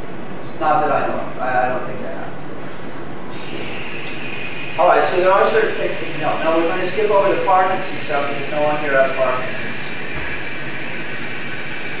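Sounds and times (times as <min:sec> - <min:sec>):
even hiss: 0:03.4 - 0:12.0.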